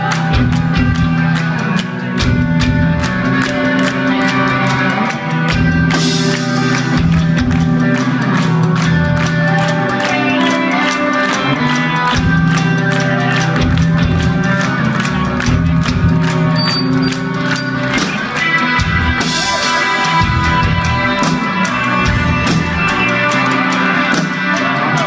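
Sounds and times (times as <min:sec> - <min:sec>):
bass guitar: 0:00.0 - 0:25.0
distorted electric guitars: 0:00.0 - 0:25.0
drum kit beat: 0:00.0 - 0:25.0.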